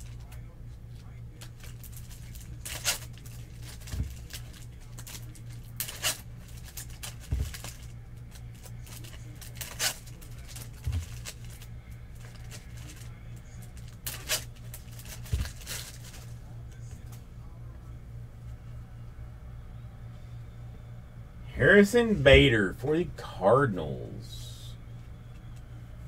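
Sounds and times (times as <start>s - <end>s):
low steady hum: 0.0s - 26.0s
foil wrapper crinkly rips: 1.4s - 16.4s.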